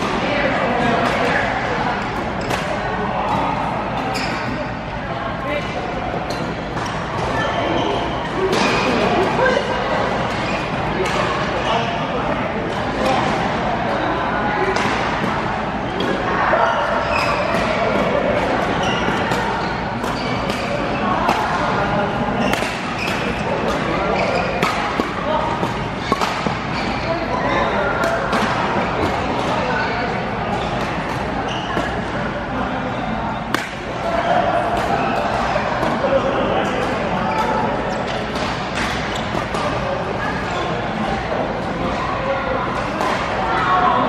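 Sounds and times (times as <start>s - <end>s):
voices in a large hall: 0.0s - 44.0s
rackets hitting shuttlecock: 2.0s - 3.4s, 16.8s - 21.8s, 22.4s - 27.0s, 33.4s - 39.8s
shoes squeaking on court: 4.0s - 4.6s, 18.7s - 21.0s, 22.4s - 24.8s, 29.8s - 34.0s
racket striking shuttlecock: 24.6s - 26.6s, 33.5s - 34.0s.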